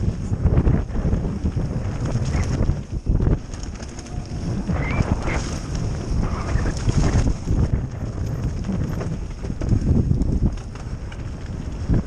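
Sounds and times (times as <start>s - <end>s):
bike tyres rumbling and rattling: 0.0s - 12.0s
wind buffeting microphone: 0.0s - 12.0s.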